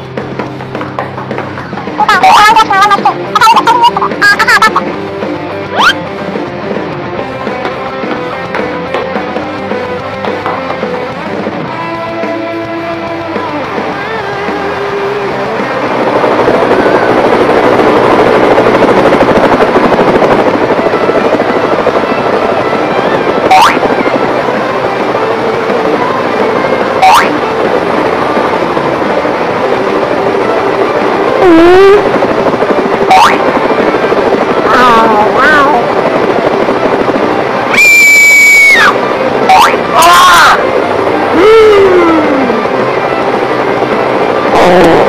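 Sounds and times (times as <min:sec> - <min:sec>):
cartoon music: 0:02.0 - 0:04.9, 0:05.7 - 0:06.0, 0:22.9 - 0:23.9, 0:27.0 - 0:27.4
rising whistle effects: 0:37.7 - 0:38.9
high held squeal: 0:37.7 - 0:39.0.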